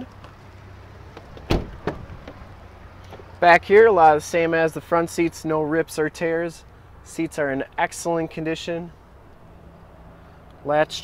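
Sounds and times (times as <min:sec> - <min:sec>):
car door slamming shut: 0:01.3 - 0:02.4.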